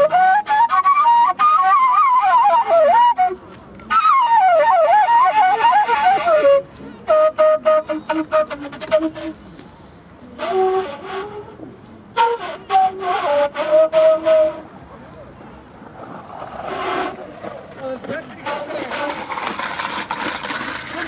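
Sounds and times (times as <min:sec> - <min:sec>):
breathy flute notes: 0:00.0 - 0:15.0.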